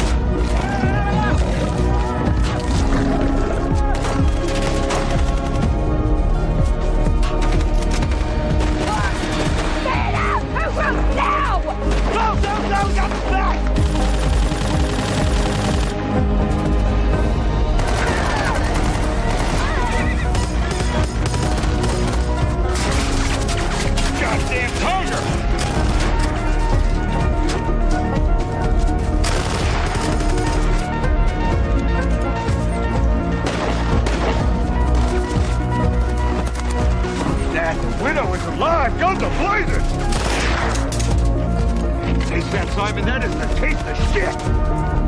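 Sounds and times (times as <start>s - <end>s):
dramatic music score: 0.0s - 45.0s
rapid gunshots: 3.8s - 5.6s, 13.8s - 16.2s, 17.7s - 26.3s, 29.2s - 30.8s, 40.1s - 40.8s.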